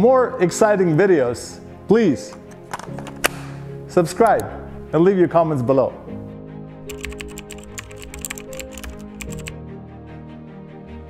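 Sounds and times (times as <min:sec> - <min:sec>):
background music: 0:00.0 - 0:11.0
computer keyboard typing clicks: 0:06.9 - 0:09.5.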